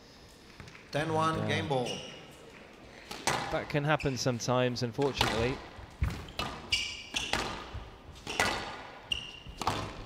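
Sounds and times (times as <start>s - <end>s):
court shoes squeaking on floor: 1.2s - 4.4s, 5.1s - 10.0s
squash ball hit by rackets: 3.1s - 3.6s, 5.1s - 10.0s.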